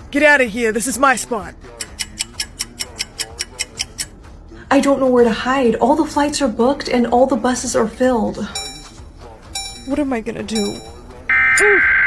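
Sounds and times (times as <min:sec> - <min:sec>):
fast clock ticking: 0:01.8 - 0:04.1, 0:09.6 - 0:11.1.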